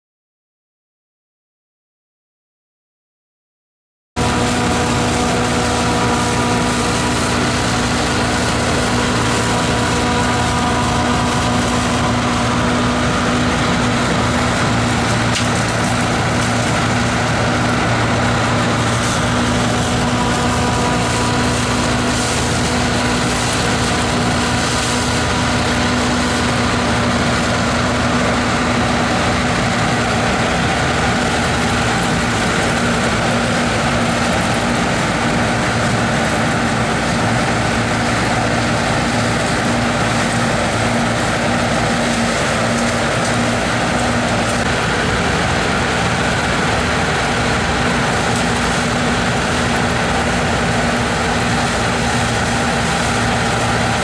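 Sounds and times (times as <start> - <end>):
combine harvester running: 4.2 - 54.0.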